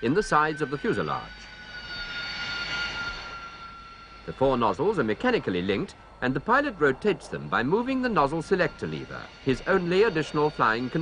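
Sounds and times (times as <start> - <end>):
jet engine high whine: 0.0 - 11.0.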